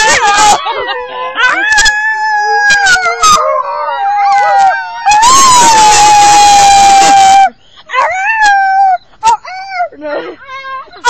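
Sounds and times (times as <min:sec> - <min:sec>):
dog howling: 0:00.0 - 0:09.9
people howling: 0:00.0 - 0:11.0.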